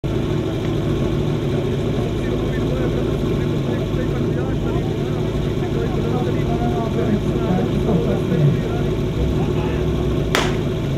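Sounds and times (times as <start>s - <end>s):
small engine idling: 0.0s - 10.9s
people's voices: 0.2s - 10.7s.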